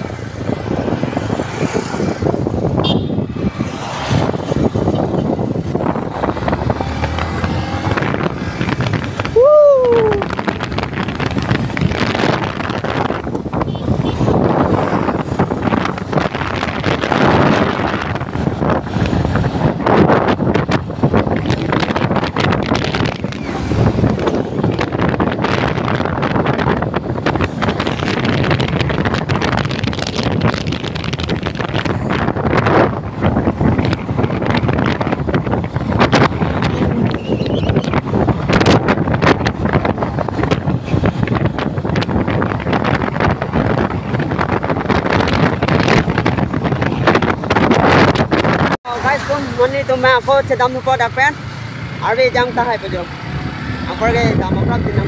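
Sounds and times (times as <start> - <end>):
motorcycle engine: 0.0 - 9.4, 10.3 - 55.0
wind rushing over microphone: 0.0 - 55.0.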